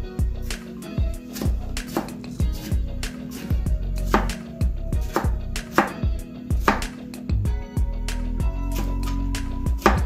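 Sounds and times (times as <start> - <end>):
knife chopping on cutting board: 1.2 - 3.5, 4.1 - 4.4, 5.0 - 7.0, 9.8 - 10.0.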